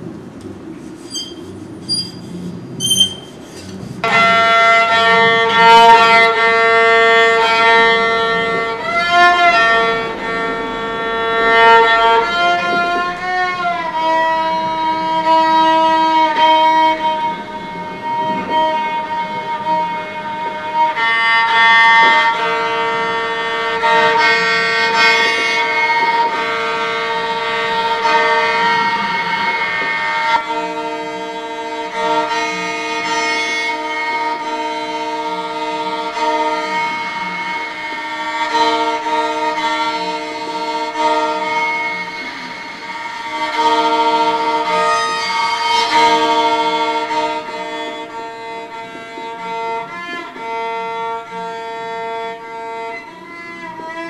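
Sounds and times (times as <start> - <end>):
solo violin bowed in held notes: 0.0 - 54.0.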